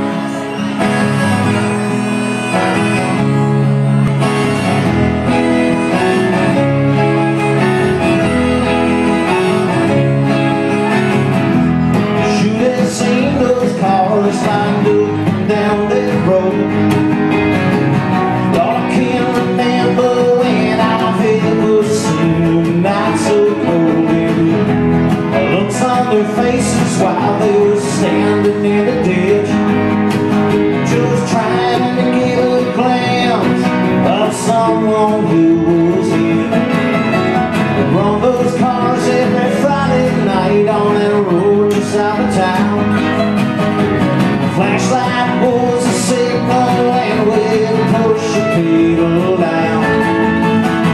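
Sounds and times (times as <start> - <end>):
acoustic guitar: 0.0 - 50.9
electric guitar: 0.0 - 50.9
mandolin: 0.0 - 50.9
upright bass: 0.0 - 50.9.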